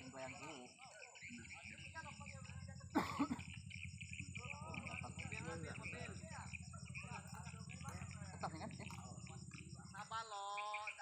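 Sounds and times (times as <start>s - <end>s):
person coughing: 3.0s - 3.4s.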